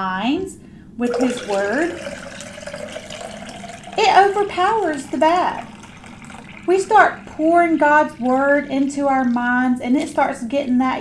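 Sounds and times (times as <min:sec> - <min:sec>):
water pouring into glass vase: 0:01.0 - 0:10.1.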